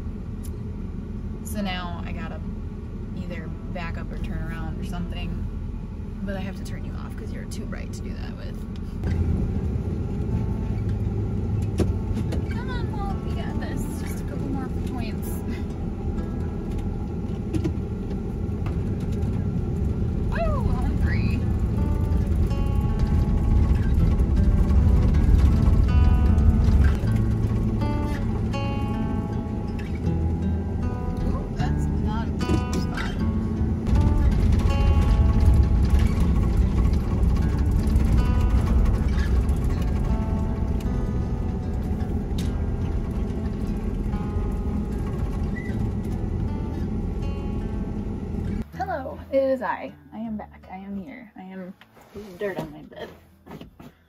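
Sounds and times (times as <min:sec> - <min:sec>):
van engine and road rumble: 0:00.0 - 0:54.0
background music: 0:20.3 - 0:53.0.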